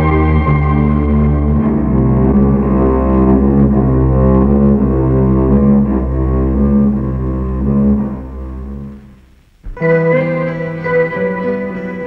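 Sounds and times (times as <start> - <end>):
low bowed strings: 0.0 - 12.0.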